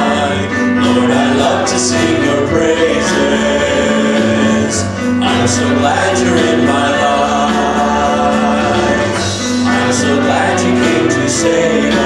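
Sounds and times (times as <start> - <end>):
keyboard accompaniment: 0.0 - 12.0
men singing worship song: 0.0 - 12.0.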